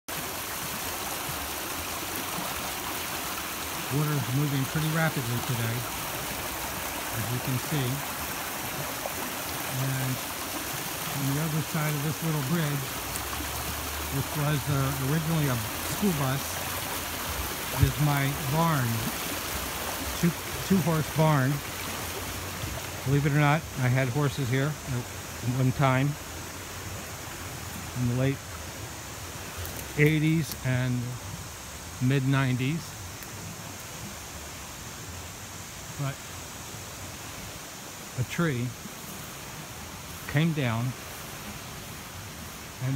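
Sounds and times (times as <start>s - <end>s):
water rushing over rocks: 0.1s - 42.9s.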